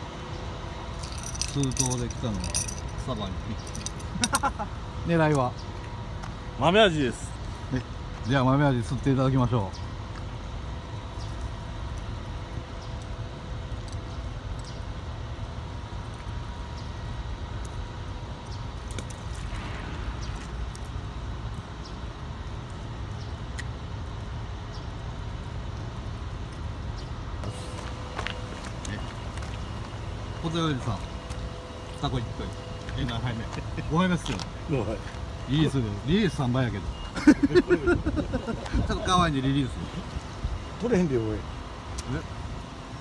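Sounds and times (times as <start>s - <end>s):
faint constant whine: 0.0s - 43.0s
low machinery hum: 0.0s - 43.0s.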